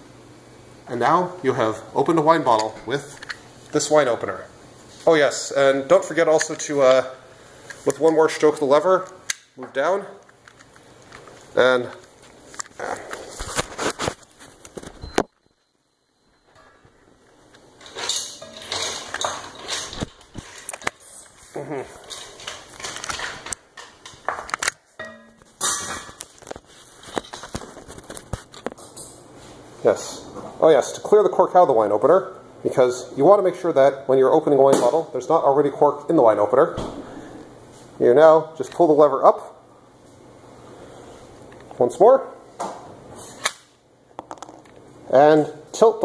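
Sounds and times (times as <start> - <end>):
handling clicks and rustling: 17.2 - 21.4, 22.0 - 24.8.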